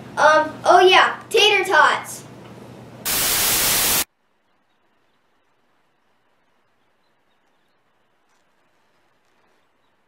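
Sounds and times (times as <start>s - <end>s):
loud static hiss: 3.0s - 6.8s.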